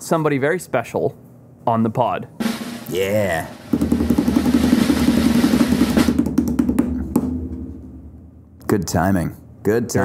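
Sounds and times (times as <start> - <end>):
drum roll: 2.4 - 8.5.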